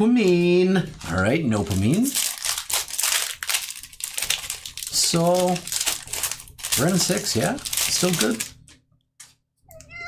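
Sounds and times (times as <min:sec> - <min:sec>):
foil wrapper crinkling: 0:00.2 - 0:08.8.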